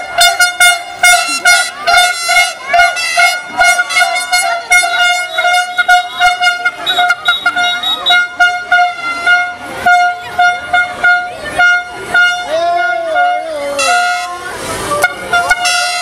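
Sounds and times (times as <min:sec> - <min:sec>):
crowd voices: 0:00.0 - 0:16.0
horn tooting: 0:00.0 - 0:16.0.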